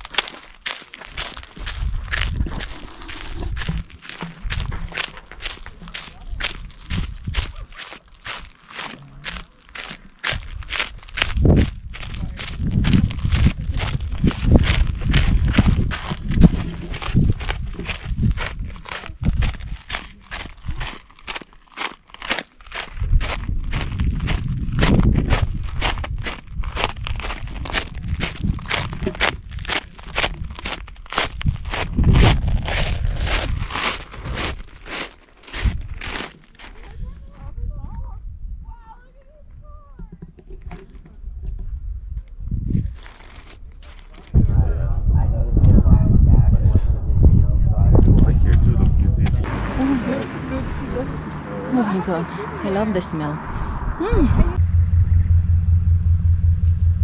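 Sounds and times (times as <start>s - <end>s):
footsteps on gravel: 0.0s - 37.4s, 42.7s - 44.4s
wind rumble on microphone: 1.5s - 7.7s, 10.3s - 21.0s, 22.7s - 34.8s, 35.5s - 36.2s, 36.8s - 51.5s, 53.3s - 57.0s.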